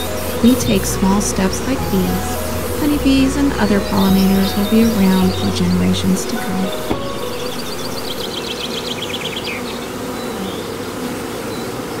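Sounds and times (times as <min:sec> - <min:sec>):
high chirps: 0:00.0 - 0:08.4
honeybees buzzing: 0:00.0 - 0:12.0.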